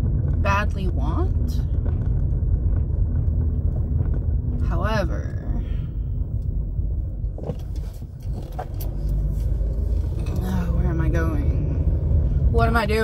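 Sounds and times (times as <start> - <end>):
car cabin road rumble: 0.0 - 13.0.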